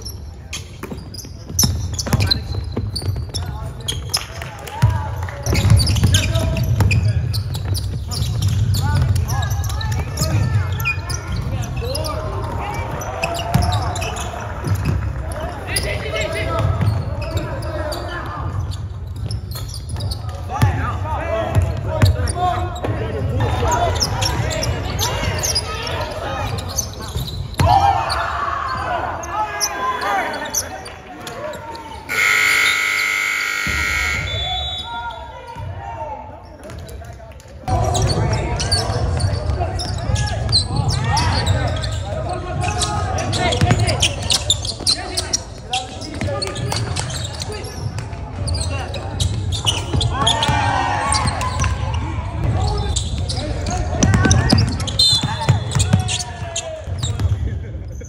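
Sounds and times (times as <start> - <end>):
steady high tone: 32.1 - 34.4
people calling out: 32.1 - 35.2.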